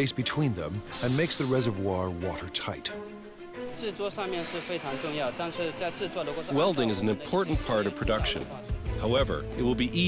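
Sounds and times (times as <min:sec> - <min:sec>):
man speaking: 0:00.0 - 0:03.0, 0:05.4 - 0:10.0
background music: 0:00.0 - 0:10.0.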